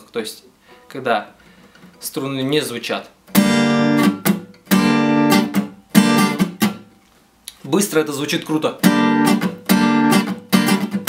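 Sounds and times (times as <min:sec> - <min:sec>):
acoustic guitar strums: 0:03.3 - 0:07.1, 0:08.4 - 0:11.0.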